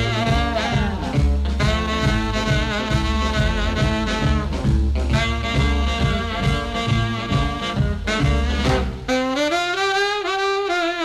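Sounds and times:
backing band: 0:00.0 - 0:11.0
tenor saxophone solo: 0:00.0 - 0:11.0.

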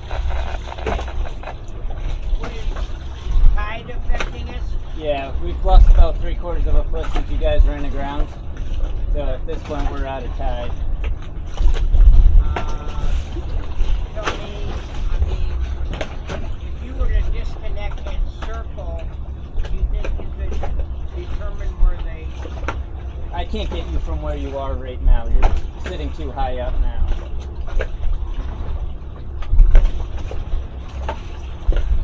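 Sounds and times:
steady low rumble: 0:00.0 - 0:32.0
indistinct talking: 0:03.5 - 0:08.3.

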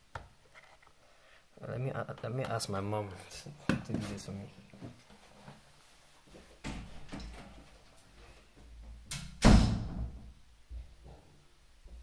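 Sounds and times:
door closing with a bang: 0:09.1 - 0:10.3.

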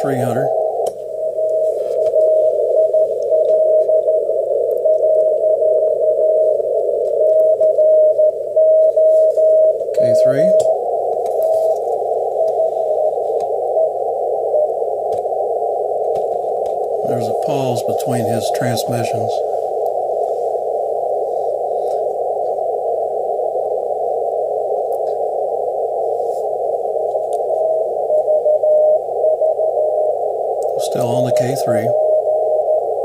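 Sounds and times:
morse code tone: 0:00.0 - 0:15.4
radio band hiss: 0:00.0 - 0:33.0.

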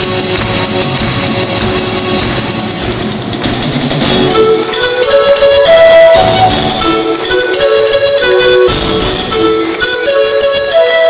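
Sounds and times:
drum kit playing: 0:00.0 - 0:10.7.

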